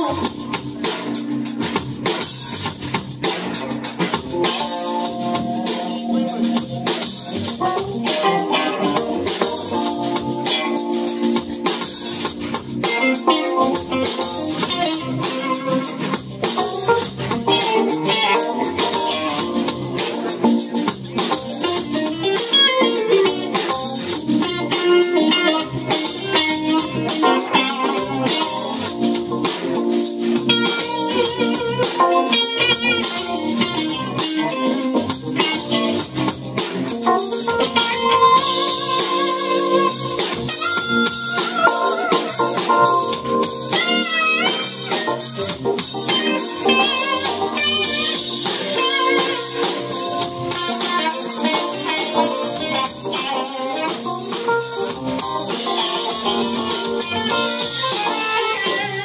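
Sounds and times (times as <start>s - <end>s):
drum kit beat: 0.0s - 59.0s
electric guitar: 0.0s - 59.0s
keyboard: 0.0s - 59.0s.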